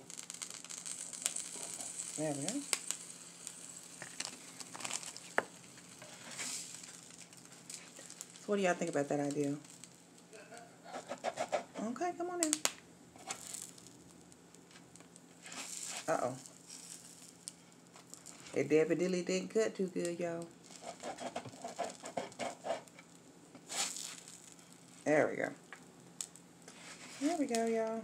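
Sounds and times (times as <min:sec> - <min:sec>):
crunching toasted bread: 0:00.0 - 0:08.5, 0:09.6 - 0:11.7, 0:12.5 - 0:18.6, 0:20.5 - 0:25.1
woman speaking: 0:02.2 - 0:02.7, 0:08.5 - 0:09.6, 0:11.8 - 0:12.6, 0:16.1 - 0:16.4, 0:18.6 - 0:20.5, 0:25.1 - 0:25.6, 0:27.2 - 0:28.0
spatula scraping griddle: 0:05.9 - 0:07.0, 0:10.8 - 0:12.0, 0:15.4 - 0:16.1, 0:20.7 - 0:23.0, 0:23.7 - 0:24.3.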